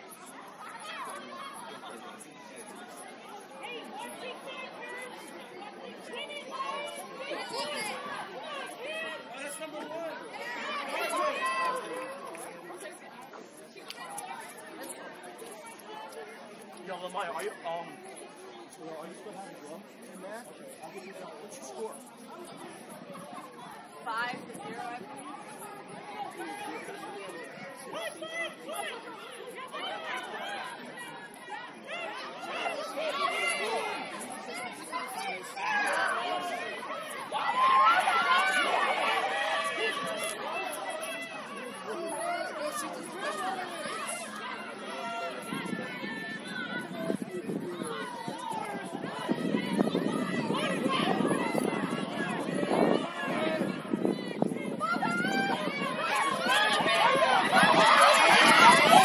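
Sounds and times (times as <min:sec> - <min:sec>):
people calling out and chattering: 0:00.0 - 0:59.0.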